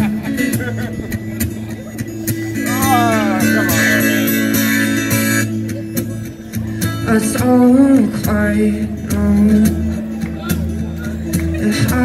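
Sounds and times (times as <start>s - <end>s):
acoustic guitar strumming: 0.1s - 10.8s
person speaking: 2.6s - 4.7s.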